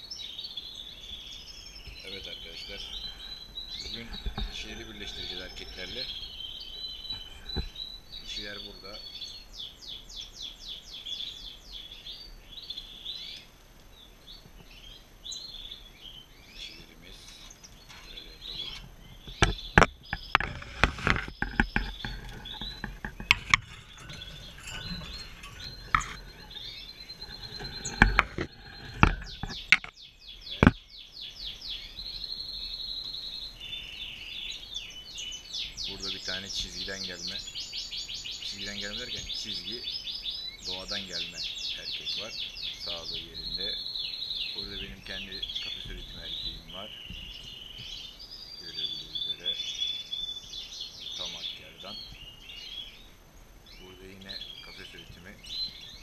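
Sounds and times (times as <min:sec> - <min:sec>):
goldfinches singing and twittering: 0:00.0 - 0:56.0
knocks and rattles of cage: 0:17.9 - 0:30.0.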